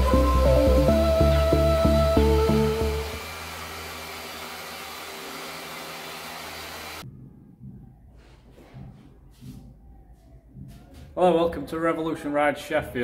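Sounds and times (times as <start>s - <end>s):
music with steady beat: 0.0s - 3.2s.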